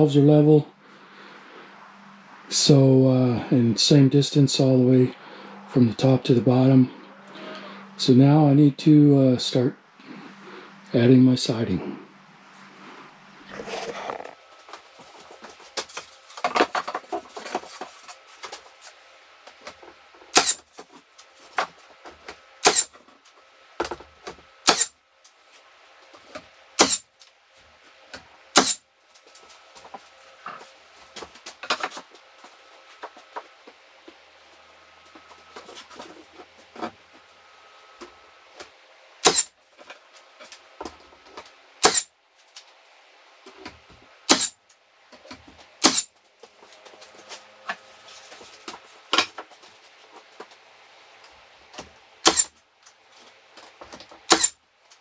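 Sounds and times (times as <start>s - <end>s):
nail gun shots into wood: 20.3s - 20.6s, 22.6s - 22.9s, 24.6s - 24.9s, 26.8s - 27.1s, 28.6s - 28.8s, 39.2s - 39.5s, 41.8s - 42.1s, 44.3s - 44.6s, 45.8s - 46.1s, 52.2s - 52.5s, 54.3s - 54.6s.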